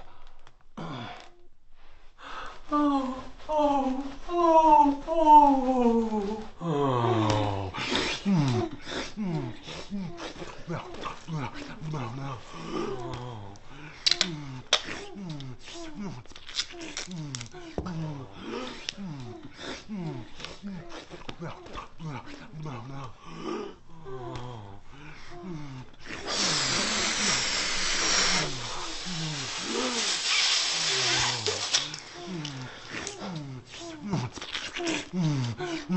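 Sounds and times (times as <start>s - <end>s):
man groaning and whimpering: 2.8s - 13.5s, 30.8s - 35.9s
loud rushing hiss: 26.2s - 32.0s.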